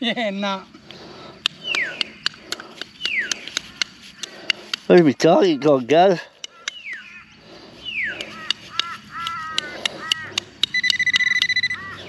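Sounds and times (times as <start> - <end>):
bird calls: 0.9 - 12.0
metal detector pinpointer beeping: 8.4 - 12.0.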